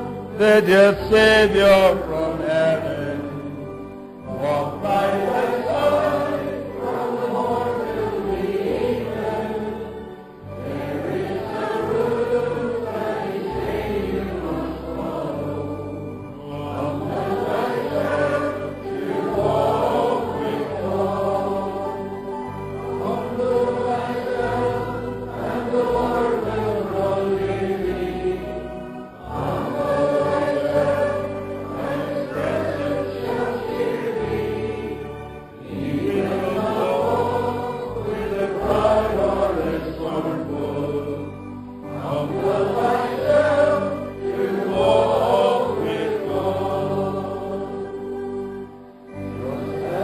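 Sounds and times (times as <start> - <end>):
congregation singing a hymn: 0.0 - 50.0.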